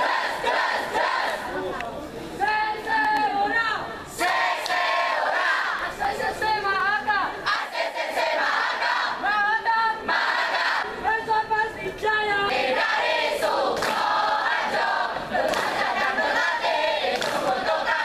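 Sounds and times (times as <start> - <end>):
students chanting a cheer: 0.0 - 1.6, 4.2 - 6.6, 7.4 - 9.4, 10.0 - 11.0, 12.5 - 18.0.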